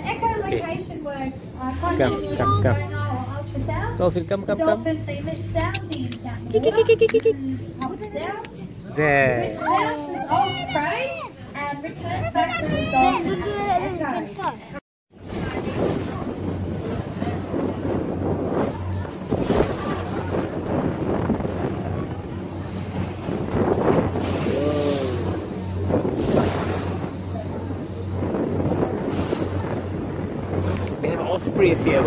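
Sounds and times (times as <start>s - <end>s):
wind buffeting microphone: 0.0s - 14.3s, 15.1s - 32.0s
motor boat engine humming: 0.0s - 32.0s
water rushing along hull: 0.0s - 32.0s.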